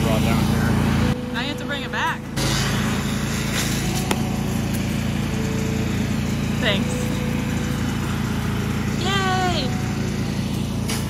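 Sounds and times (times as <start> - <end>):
small engine droning: 0.0 - 11.0.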